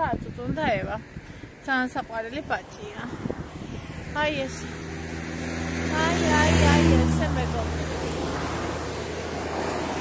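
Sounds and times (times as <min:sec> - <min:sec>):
vehicle engine passing: 0:02.5 - 0:10.0.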